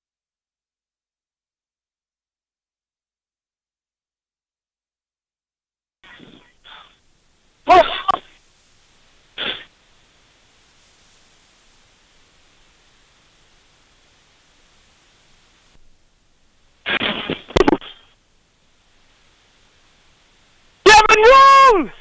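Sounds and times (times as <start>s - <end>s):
faint hiss: 6.0s - 22.0s
shouts over radio microphone: 20.8s - 22.0s.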